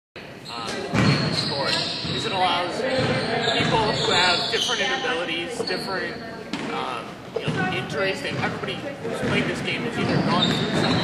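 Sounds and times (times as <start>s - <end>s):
thuds and knocks echoing: 0.8s - 1.4s, 2.9s - 4.0s, 7.4s - 11.0s.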